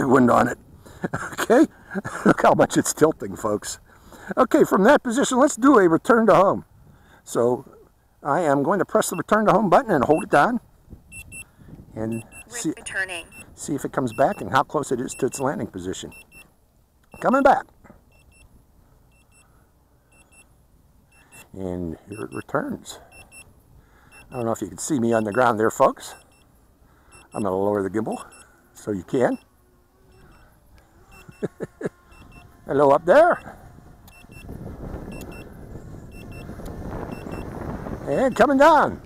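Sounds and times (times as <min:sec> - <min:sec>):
remote controller double beep: 0:22.1 - 0:22.5, 0:35.1 - 0:35.5, 0:37.1 - 0:37.4.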